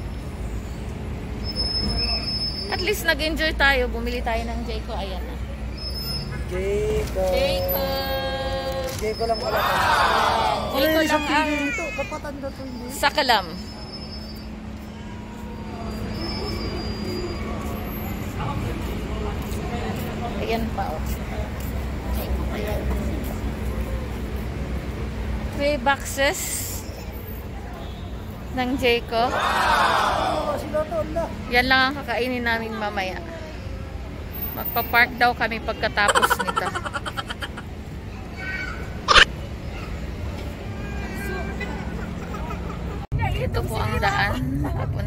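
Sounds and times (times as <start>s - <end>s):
woman laughing: 35.9s - 37.7s.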